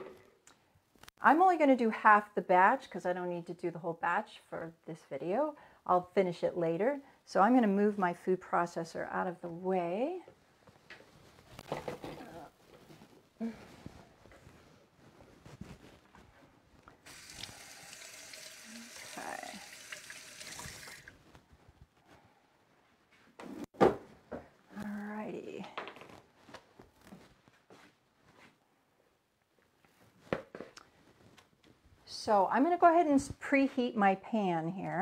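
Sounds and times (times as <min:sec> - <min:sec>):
kitchen tap running: 0:17.1 - 0:21.2.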